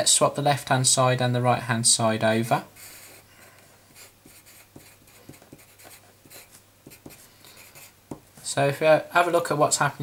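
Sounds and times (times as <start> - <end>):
pencil scratching on paper: 2.8 - 3.2, 4.0 - 7.9.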